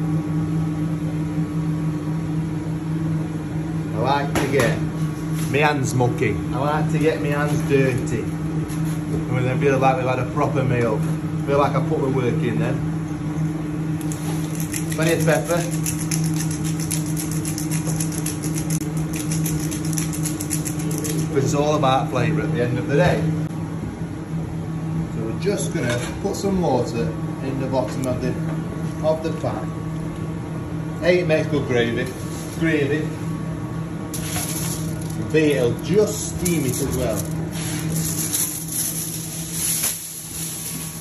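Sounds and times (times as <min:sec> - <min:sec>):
kitchen equipment hum: 0:00.0 - 0:41.0
pepper mill grinding: 0:14.0 - 0:21.4, 0:34.2 - 0:35.3, 0:36.1 - 0:41.0.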